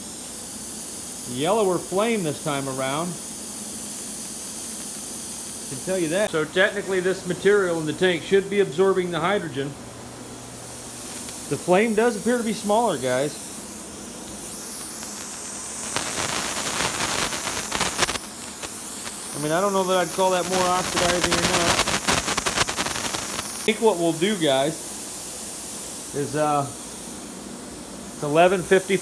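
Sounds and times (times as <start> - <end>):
gas torch hissing: 0.0 - 29.0
crackling: 10.4 - 13.5, 14.4 - 24.6.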